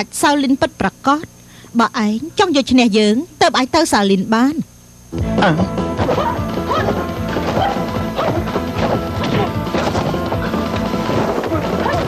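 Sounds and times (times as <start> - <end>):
fight music: 5.2 - 12.0
punch and kick whacks: 6.0 - 10.3.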